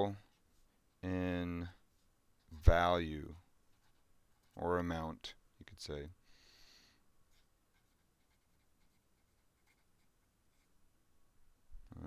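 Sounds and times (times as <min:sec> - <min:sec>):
marker scratching on paper: 0:03.7 - 0:04.0, 0:07.3 - 0:10.7.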